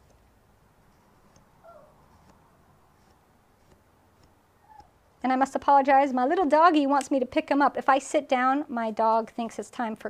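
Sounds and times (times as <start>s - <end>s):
small dog whining: 1.6s - 2.0s, 4.6s - 5.0s.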